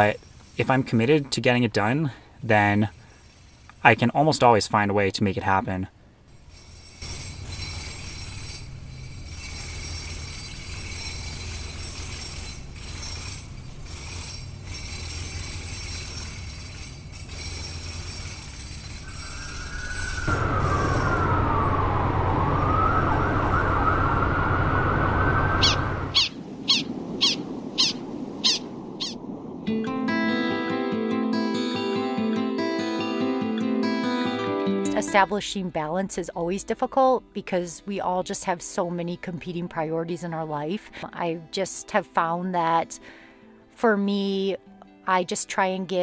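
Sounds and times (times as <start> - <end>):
street traffic rumble: 6.4 - 29.7
siren wailing: 19.1 - 29.2
music: 29.7 - 46.0.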